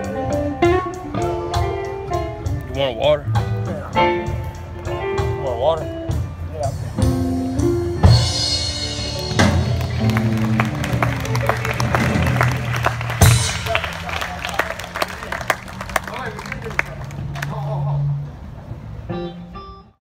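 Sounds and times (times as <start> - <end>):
blues band held notes: 0.0 - 20.0
audience clapping: 9.2 - 17.7.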